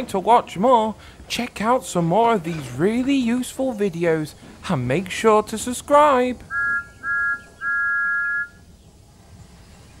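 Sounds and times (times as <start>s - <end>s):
faint low hiss: 0.0s - 10.0s
steam engine whistle blast: 6.5s - 8.6s.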